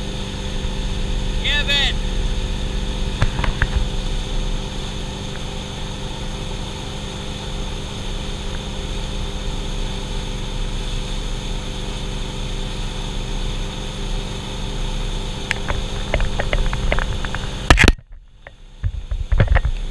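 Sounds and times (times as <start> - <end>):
water rushing: 0.0 - 12.8
boat engine drone: 0.0 - 19.9.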